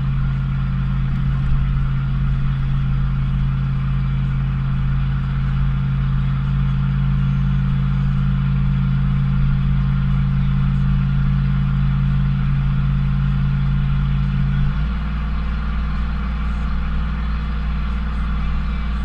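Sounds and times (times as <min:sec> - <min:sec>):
truck engine low drone: 0:00.0 - 0:19.0.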